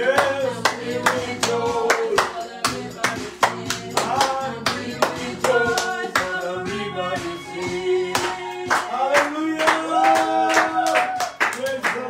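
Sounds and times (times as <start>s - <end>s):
hand clapping on the beat: 0.0s - 6.5s, 8.1s - 12.0s
voices singing gospel song: 0.0s - 12.0s.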